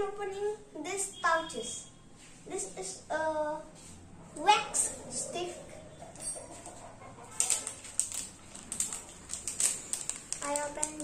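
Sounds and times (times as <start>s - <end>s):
plastic pouch crinkling: 7.4s - 11.0s.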